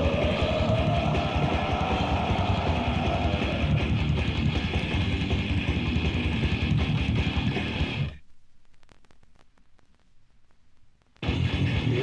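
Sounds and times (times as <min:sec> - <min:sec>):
rapid drumming: 0:00.0 - 0:08.0
distorted electric guitars: 0:00.0 - 0:12.0.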